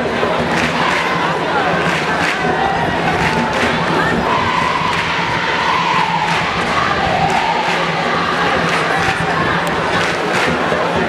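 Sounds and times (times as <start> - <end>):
crowd singing a cheer song: 0.0 - 11.0
loud crowd din: 0.0 - 11.0.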